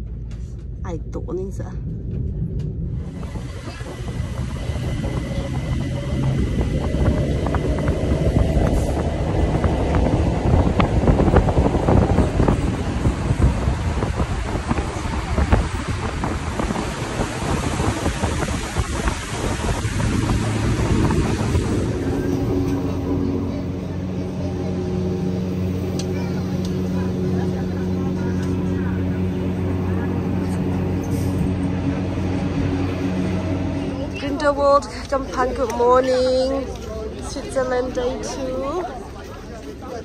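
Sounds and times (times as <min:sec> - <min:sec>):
train running rumble: 0:00.0 - 0:40.0.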